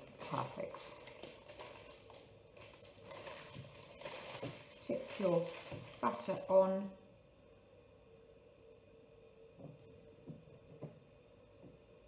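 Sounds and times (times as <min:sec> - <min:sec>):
greaseproof paper rustling: 0:00.0 - 0:06.5.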